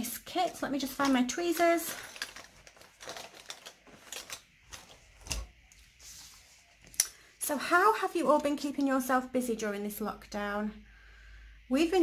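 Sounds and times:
paper rustle: 0.3 - 6.7.

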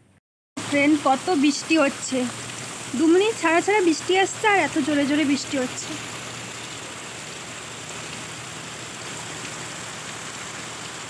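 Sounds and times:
rain falling on foliage: 0.6 - 11.0.

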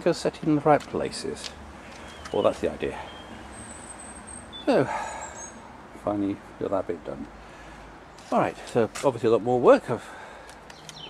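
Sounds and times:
man speaking: 0.0 - 1.6, 2.3 - 3.1, 4.7 - 5.2, 6.0 - 7.3, 8.3 - 10.2.

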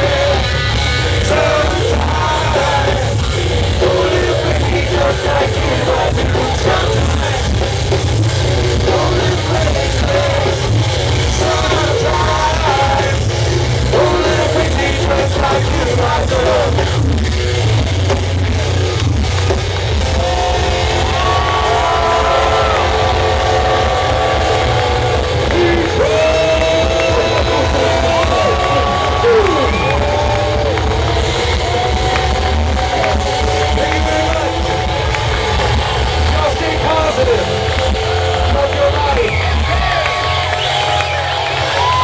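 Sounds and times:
live rock band through pa: 0.0 - 42.0.

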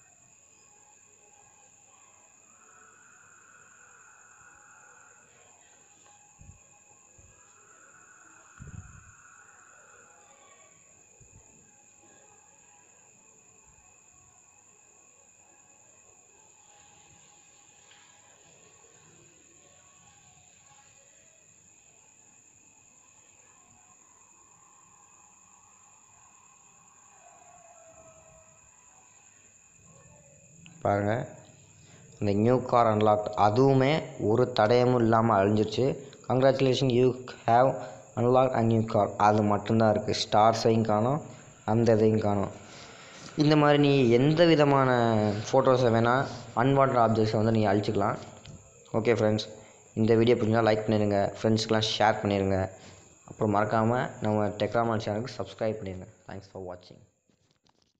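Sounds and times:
high-pitched whine: 0.0 - 13.9, 30.5 - 56.5.

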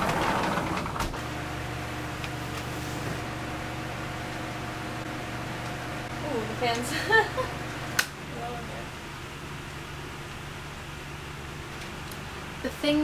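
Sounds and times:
sliding glass door rolling open: 0.0 - 3.2
electric fan humming: 0.0 - 13.0.

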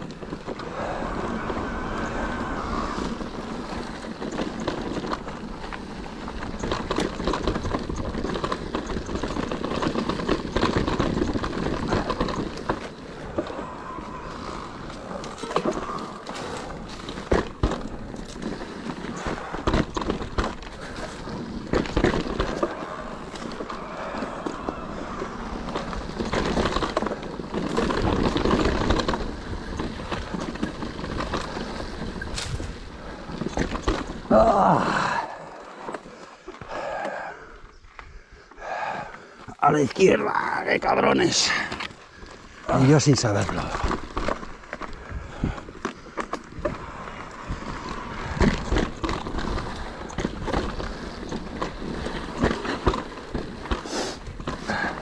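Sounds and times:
tyre noise on dirt: 0.0 - 37.3, 41.3 - 55.0
bike knocks and rattles: 3.2 - 13.5, 14.4 - 23.7, 25.6 - 36.1, 47.6 - 55.0.

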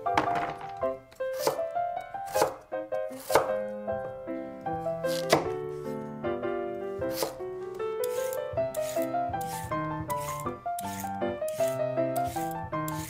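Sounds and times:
background music with light melody: 0.0 - 13.0
knife chopping on wooden board: 1.3 - 1.7, 2.3 - 3.6, 5.1 - 5.6, 7.0 - 7.4, 8.0 - 13.0.

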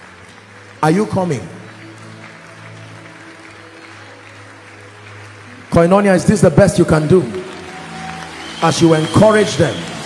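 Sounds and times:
soft music of held chords: 0.0 - 10.0.

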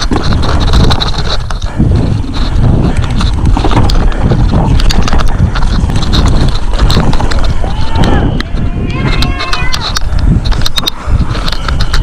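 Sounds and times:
bike frame rattles and knocks: 0.0 - 12.0
bike tyres rumbling over dirt: 0.0 - 12.0.

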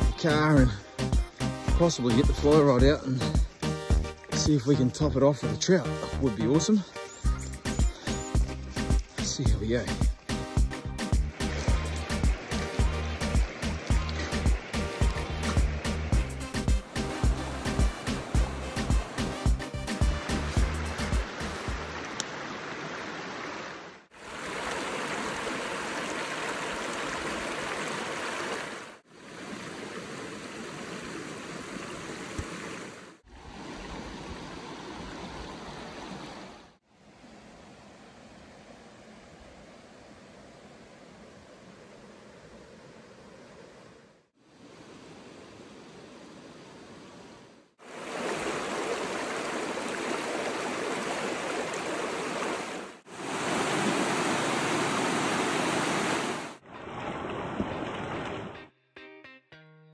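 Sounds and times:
background music with steady beat: 0.0 - 4.6, 7.0 - 21.9
river running over stones: 7.6 - 36.8, 47.8 - 58.5.

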